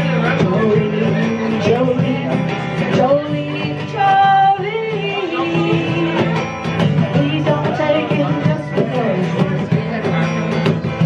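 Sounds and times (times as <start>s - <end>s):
acoustic guitar strumming: 0.0s - 11.0s
cajon beats: 0.0s - 11.0s
person singing: 0.0s - 11.0s.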